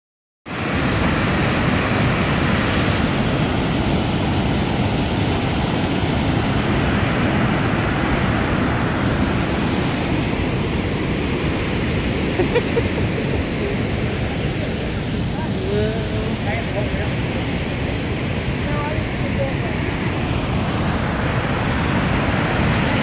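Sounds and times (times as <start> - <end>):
waterfall rushing: 0.5 - 23.0.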